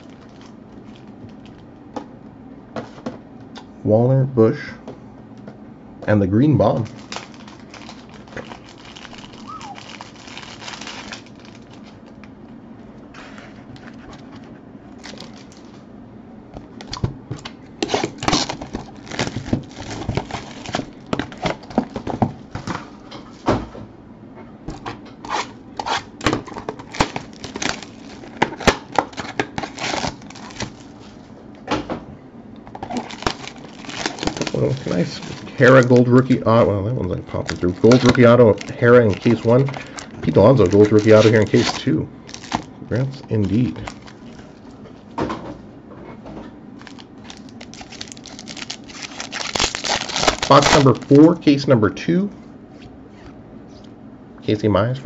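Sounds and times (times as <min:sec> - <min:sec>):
plastic wrap crinkling and tearing: 0:00.0 - 0:01.7, 0:06.6 - 0:12.3, 0:13.2 - 0:15.8, 0:16.7 - 0:22.2, 0:25.2 - 0:31.2, 0:32.6 - 0:44.7, 0:46.8 - 0:51.4
packs rustling and clicking: 0:06.8 - 0:12.2, 0:32.7 - 0:36.4, 0:37.3 - 0:44.6, 0:46.8 - 0:51.3.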